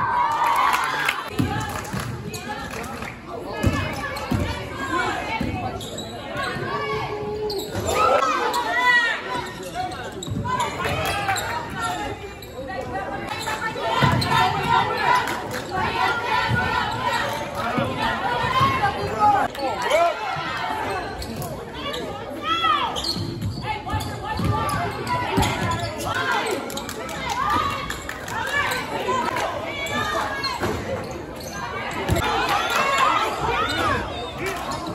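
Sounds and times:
voices and shouts: 0.0s - 34.9s
sneakers squeaking: 3.6s - 15.6s, 20.9s - 34.9s.

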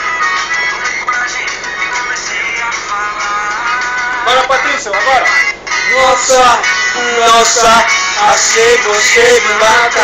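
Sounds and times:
pop music: 0.0s - 10.0s
man singing: 1.0s - 10.0s.

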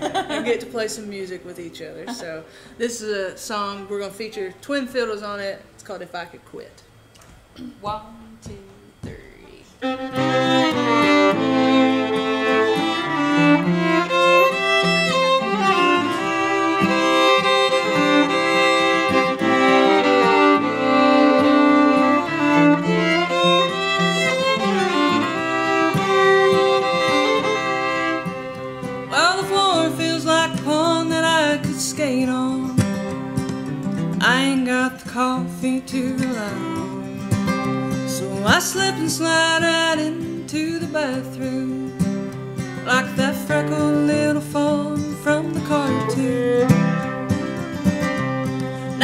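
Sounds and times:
acoustic guitar: 7.1s - 49.0s
fiddles playing in harmony: 9.8s - 31.7s, 32.8s - 34.0s, 36.0s - 40.1s, 41.2s - 49.0s.

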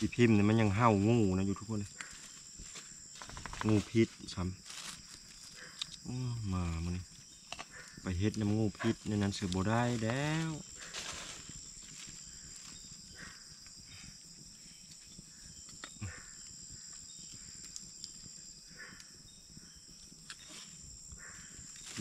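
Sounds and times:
night insects chirring: 0.0s - 22.0s.

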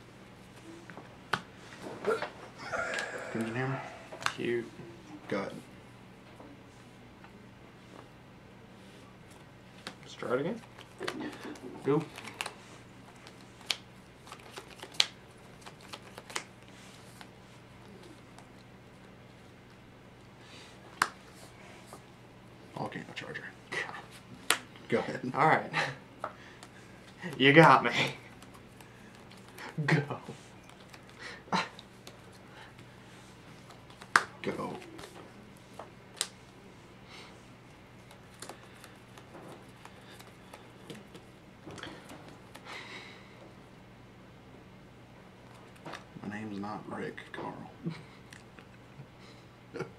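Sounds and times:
sleeved cards being handled: 9.2s - 18.7s, 26.5s - 31.2s, 31.8s - 36.6s, 37.4s - 42.7s
sharp card snaps: 13.2s - 16.5s, 36.1s - 36.4s.

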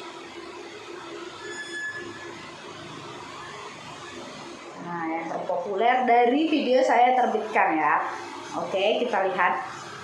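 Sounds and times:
short high-pitched tone: 1.4s - 2.4s.

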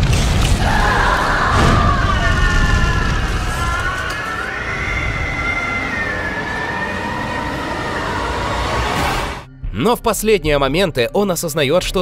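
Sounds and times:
high siren-like wail: 0.6s - 9.5s
low rumble: 1.5s - 9.7s.

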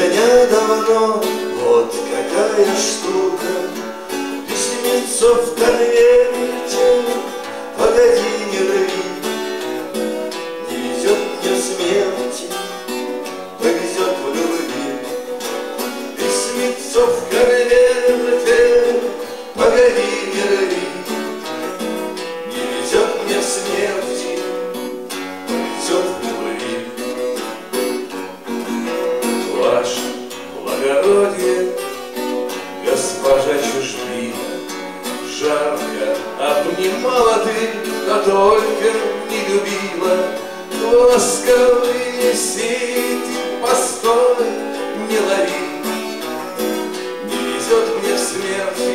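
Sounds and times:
man singing into microphone: 0.0s - 9.9s, 10.6s - 12.8s, 13.6s - 21.5s, 22.5s - 24.9s, 25.5s - 27.2s, 29.4s - 32.0s, 32.8s - 46.2s, 47.2s - 48.9s
acoustic guitars strummed: 0.0s - 48.9s.

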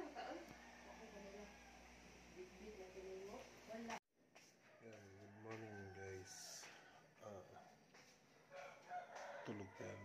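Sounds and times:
rooster crowing: 0.5s - 2.0s, 4.7s - 7.1s, 8.5s - 10.0s.

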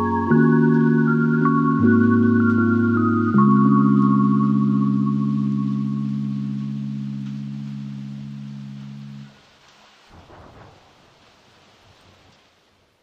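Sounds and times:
low music chord: 0.0s - 9.3s
faint hiss: 0.0s - 13.0s.

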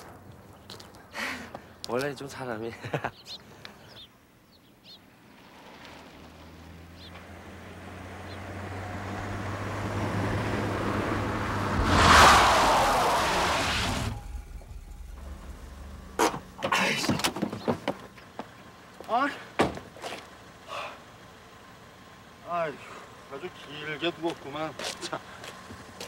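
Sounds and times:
car engine approaching: 5.1s - 26.0s
tyres skidding screech: 5.3s - 18.2s.

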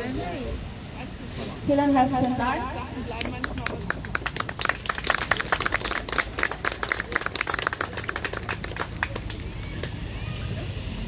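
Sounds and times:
small crowd clapping: 3.1s - 10.2s.

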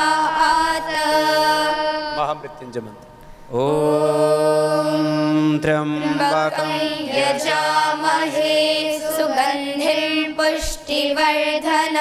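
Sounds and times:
man and children chanting: 3.6s - 12.0s.

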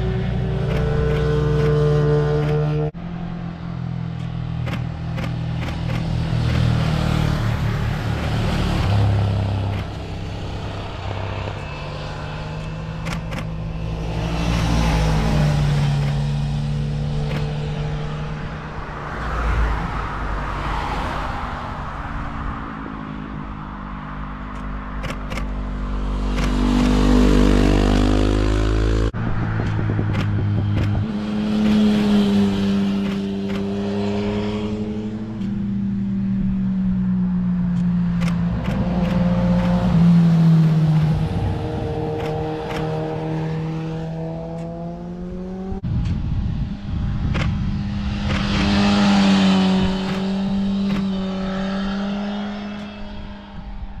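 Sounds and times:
motorcycles passing by: 0.0s - 54.0s.

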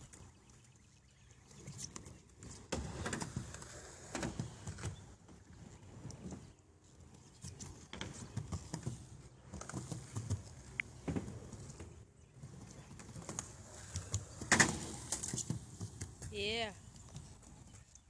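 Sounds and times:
skateboard wheels rolling: 1.8s - 6.6s, 7.2s - 17.8s.

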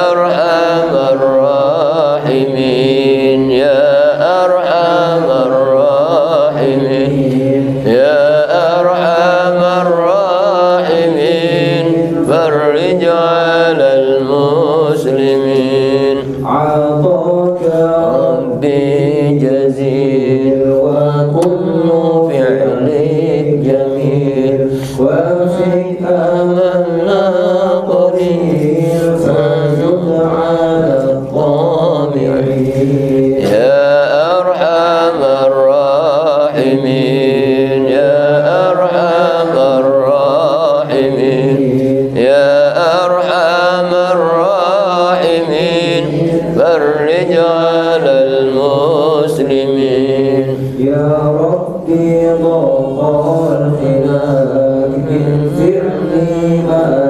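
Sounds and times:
man chanting into a microphone: 0.0s - 57.0s.

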